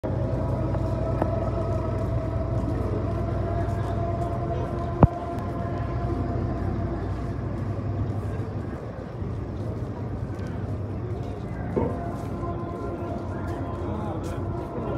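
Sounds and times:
steady outdoor hum: 0.0 - 14.9.

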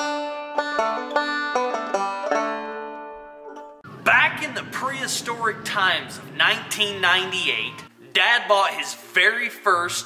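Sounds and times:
banjo picking tune: 0.0 - 4.8.

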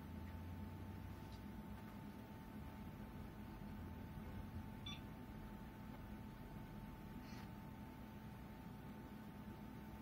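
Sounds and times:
computer hum: 0.0 - 10.0
faint steady whine: 0.0 - 10.0
short electronic beep: 4.8 - 5.1.

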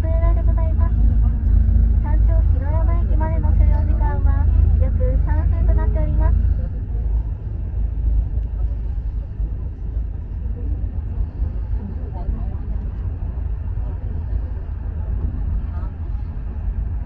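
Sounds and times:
recorded announcement voice: 0.0 - 7.2
gondola cabin rumble: 0.0 - 17.0.

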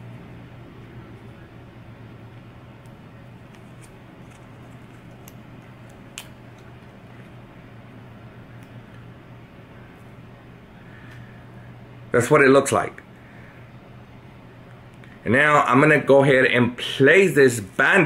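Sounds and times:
low room hum: 0.0 - 18.0
bandage clicks and crinkles: 2.8 - 7.4.

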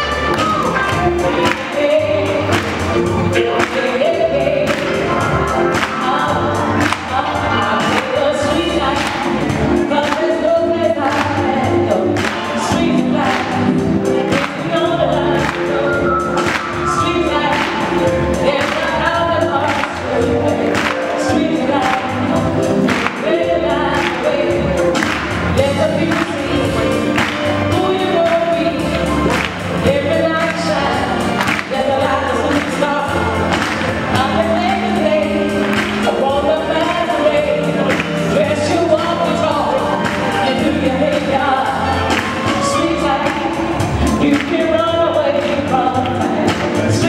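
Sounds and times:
backing music with steady beat: 0.0 - 47.0
live band playing: 0.0 - 47.0
woman singing into microphone: 0.0 - 47.0.

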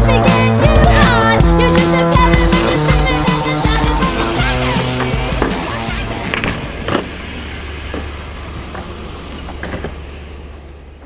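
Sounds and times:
bike rolling rumble: 0.0 - 11.0.

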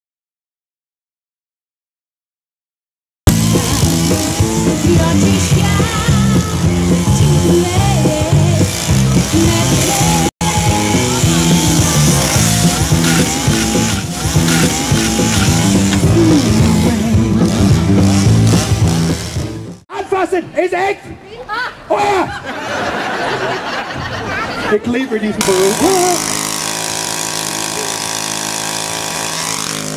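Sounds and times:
chainsaw engine running: 3.3 - 19.8, 25.4 - 29.9
loud music: 3.3 - 19.8.

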